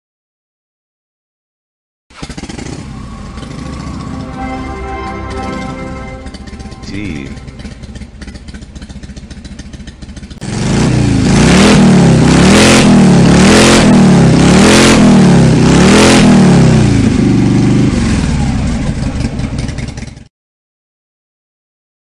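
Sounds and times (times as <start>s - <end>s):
motorcycle engine revving: 2.1s - 4.4s, 7.4s - 20.3s.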